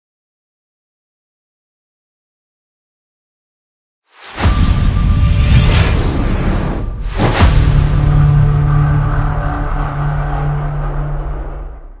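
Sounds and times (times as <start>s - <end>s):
logo sting hit: 4.2s - 9.0s
loud low drone: 4.4s - 12.0s.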